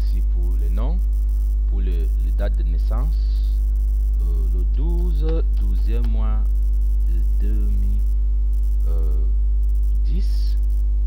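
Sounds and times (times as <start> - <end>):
low mains hum: 0.0 - 11.0
man hesitating: 4.2 - 5.7, 8.9 - 9.4.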